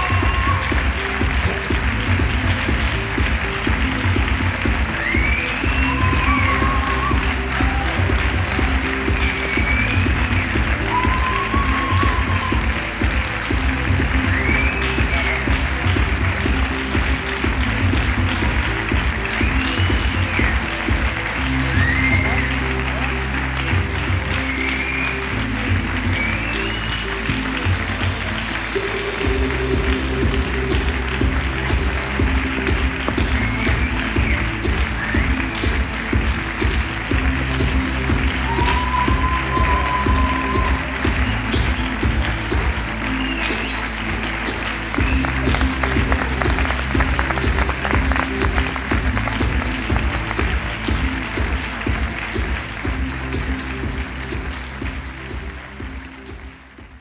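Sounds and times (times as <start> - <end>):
audience applauding: 0.0 - 57.0
music with repeating bass line: 0.0 - 57.0.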